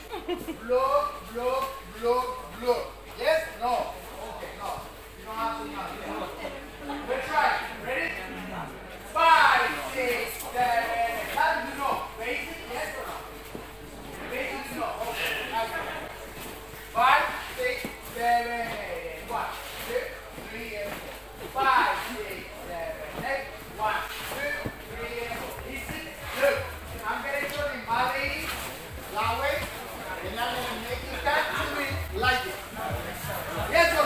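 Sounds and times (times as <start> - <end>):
people talking: 14.2 - 16.4, 17.0 - 34.0.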